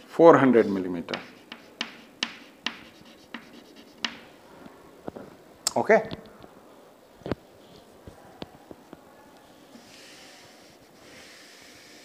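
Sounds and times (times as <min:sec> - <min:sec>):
chalk scraping on chalkboard: 0:00.6 - 0:04.2, 0:09.7 - 0:12.0
chalk tapping on chalkboard: 0:01.1 - 0:04.3.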